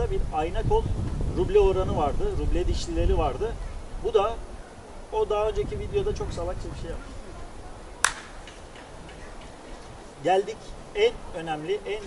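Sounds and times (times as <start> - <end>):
faint low background noise: 0.0 - 12.0.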